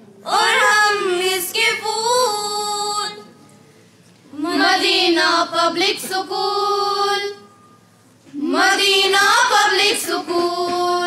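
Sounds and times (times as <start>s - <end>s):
girls singing in unison: 0.2s - 3.3s, 4.3s - 7.7s, 8.3s - 11.0s.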